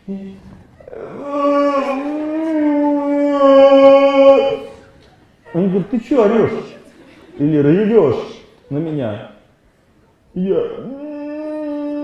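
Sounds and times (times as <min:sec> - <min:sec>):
man wailing: 0:00.8 - 0:04.8, 0:10.4 - 0:12.0.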